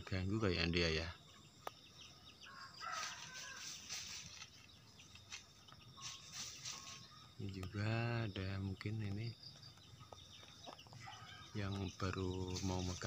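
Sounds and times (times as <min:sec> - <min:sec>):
distant birds calling: 0:00.0 - 0:13.0.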